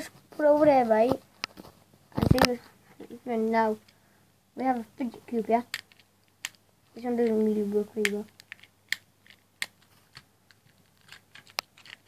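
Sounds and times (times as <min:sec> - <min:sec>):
fidget cube clicking: 0:05.4 - 0:12.0.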